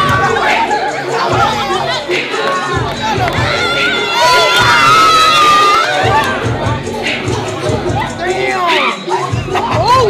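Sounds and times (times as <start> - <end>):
crowd shouting and cheering: 0.0 - 10.0
loud music with bass beat: 0.0 - 10.0.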